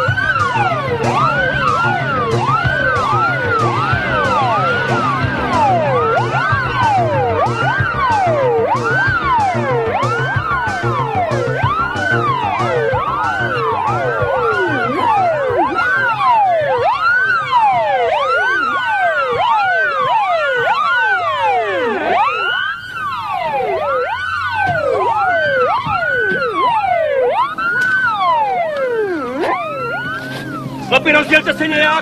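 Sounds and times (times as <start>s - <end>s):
emergency vehicle sirens wailing: 0.0s - 32.0s.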